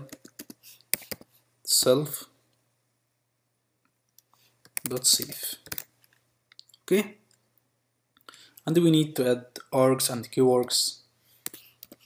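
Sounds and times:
person speaking: 0.0 - 2.4, 4.7 - 5.9, 6.6 - 7.4, 8.6 - 12.0
computer keyboard keystrokes: 0.1 - 1.3, 4.6 - 5.9.

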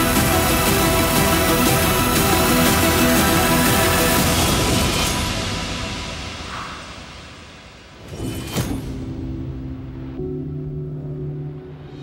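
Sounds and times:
orchestral trailer music: 0.0 - 12.0.

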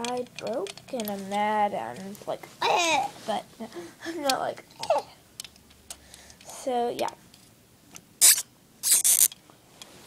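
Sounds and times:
scraping handling noise: 0.0 - 3.5.

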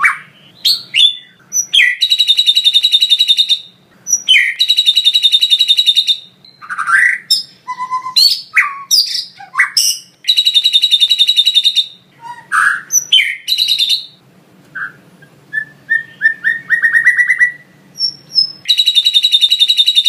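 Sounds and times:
bird singing whistles and chirps: 0.0 - 20.0
bird rattling trill: 1.0 - 7.0, 9.8 - 12.0, 18.0 - 20.0.

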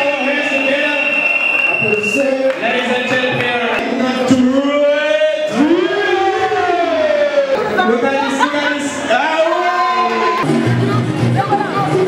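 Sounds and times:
music: 10.1 - 12.0.

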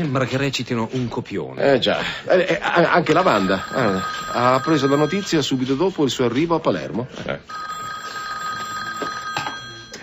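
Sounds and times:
telephone ringing: 3.1 - 6.4, 7.5 - 10.0.

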